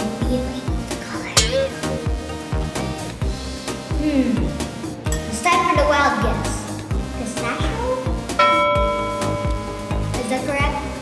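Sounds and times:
music with steady beat: 0:01.4 - 0:05.3, 0:08.1 - 0:11.0
bell-like chime: 0:08.4 - 0:10.3.

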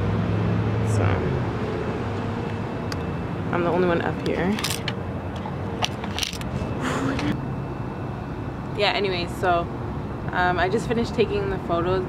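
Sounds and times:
city traffic rumble: 0:00.0 - 0:12.0.

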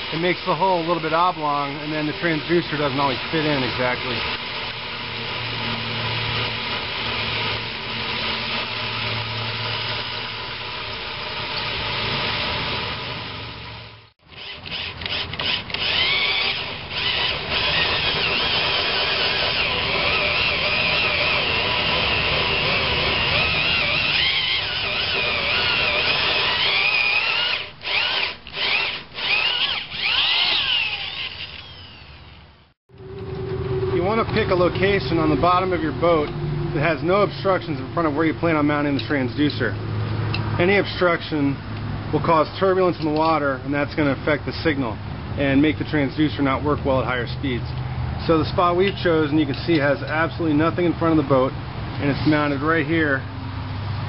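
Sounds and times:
hole saw grinding: 0:00.0 - 0:39.6
electric drill whining: 0:14.3 - 0:36.2.

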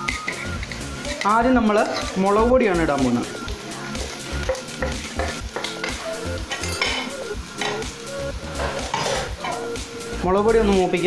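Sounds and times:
onions sizzling: 0:00.0 - 0:11.0
metal spoon scraping metal pot: 0:08.5 - 0:09.7.

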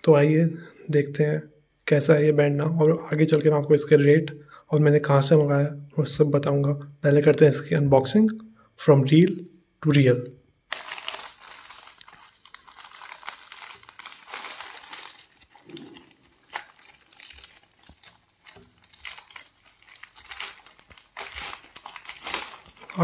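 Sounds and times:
plastic bag tearing: 0:10.7 - 0:23.0
plastic mailer bag crinkling: 0:10.7 - 0:23.0.

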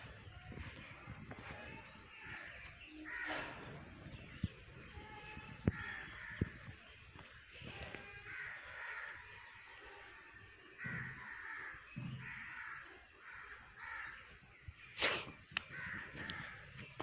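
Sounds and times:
crows cawing: 0:02.2 - 0:04.2, 0:05.7 - 0:14.5, 0:15.6 - 0:17.0.

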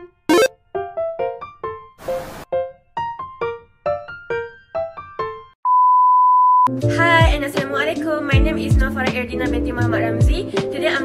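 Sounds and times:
music with a beat: 0:08.4 - 0:09.2, 0:10.2 - 0:10.8.

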